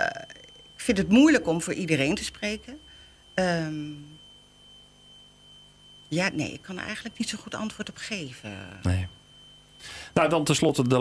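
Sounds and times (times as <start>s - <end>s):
high-pitched whine: 0.0s - 11.0s
low electrical hum: 0.0s - 11.0s.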